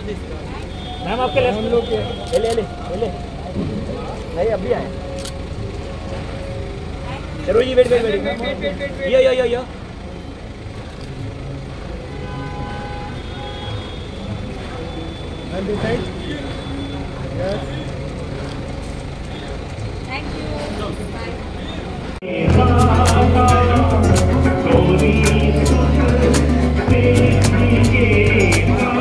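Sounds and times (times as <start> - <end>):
faint indistinct voices: 0.0 - 9.0, 9.6 - 29.0
low traffic rumble: 0.0 - 29.0.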